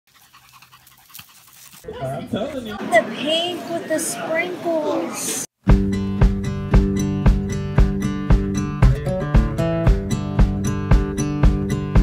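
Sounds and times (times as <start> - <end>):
small dog panting: 0.1 - 2.1.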